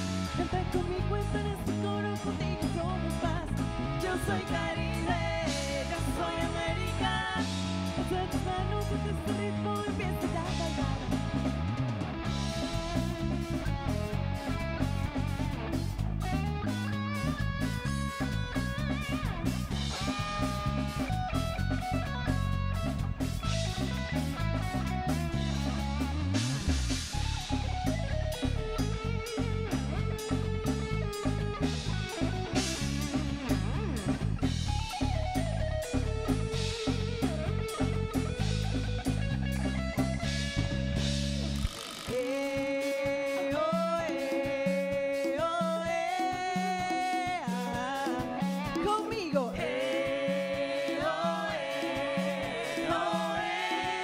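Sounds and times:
live rock band playing: 0.0 - 54.0.

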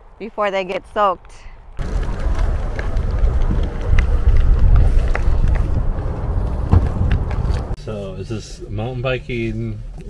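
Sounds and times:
wind rumbling on microphone: 1.8 - 7.8.

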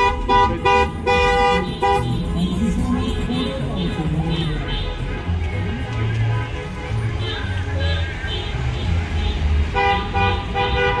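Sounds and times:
car horn honking: 0.0 - 11.0
vehicles rumbling past: 0.0 - 11.0.

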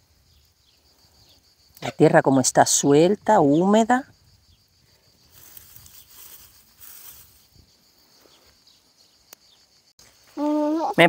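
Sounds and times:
soil pattering onto mulch: 5.2 - 7.7.

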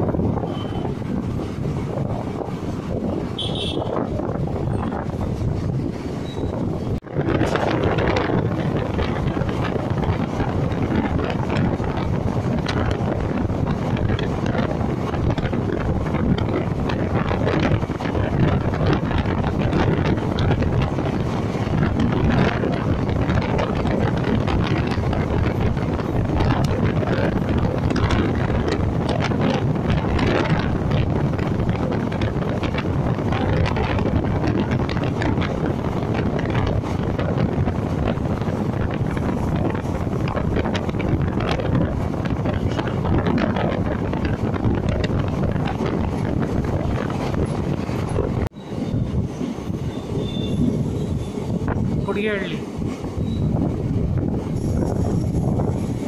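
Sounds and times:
train wheel and rail rumble: 0.0 - 56.0
wind rushing: 0.0 - 56.0.

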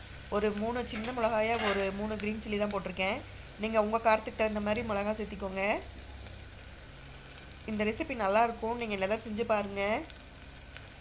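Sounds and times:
onions sizzling in a pan: 0.0 - 11.0.

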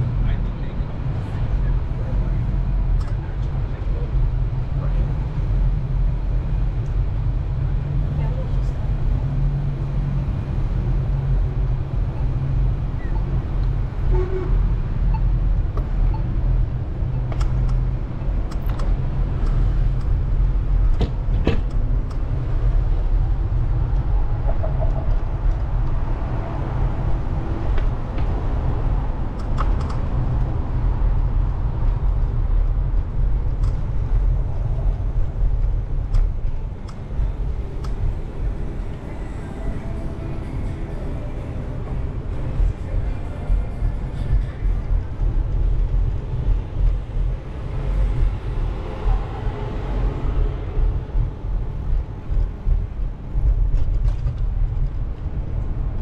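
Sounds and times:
city street noise: 0.0 - 56.0
wind rumble on microphone: 0.0 - 56.0.

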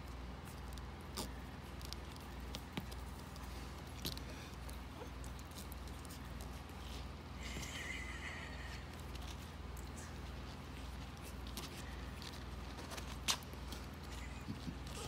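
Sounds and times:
steady low hum: 0.0 - 15.0
light clicks and scrapes: 8.8 - 15.0.

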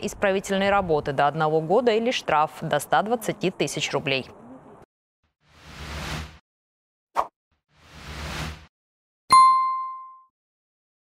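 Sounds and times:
bright bell-like ding: 9.3 - 10.3.

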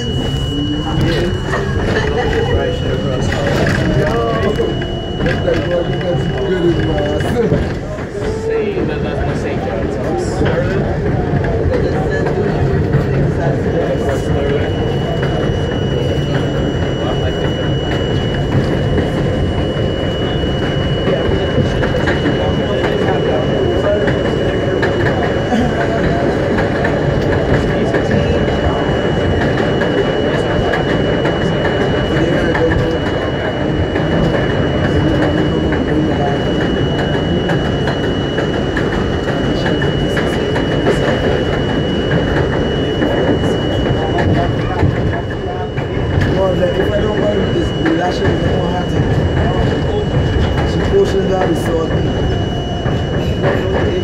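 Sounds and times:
thin high tone: 0.0 - 8.7
train wheels rumbling on rail: 0.0 - 54.0.

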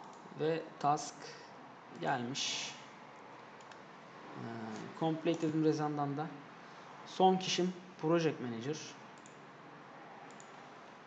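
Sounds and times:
room noise hiss: 0.0 - 11.0
computer mouse clicks: 3.4 - 3.8, 9.2 - 9.4, 10.2 - 10.6.

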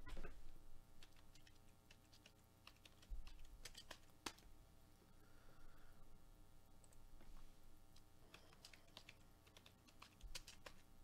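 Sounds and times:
keyboard typing clicks: 8.3 - 10.8.

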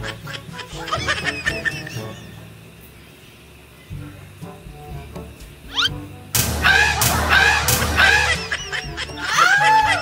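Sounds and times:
background music: 3.8 - 10.0
sharp knocks: 6.4 - 8.2.

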